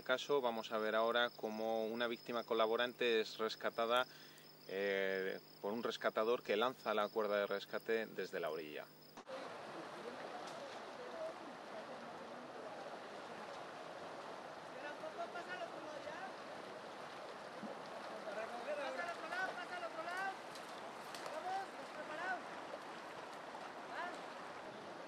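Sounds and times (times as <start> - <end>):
river water rushing: 9.2 - 25.0
voices calling out: 18.0 - 22.7.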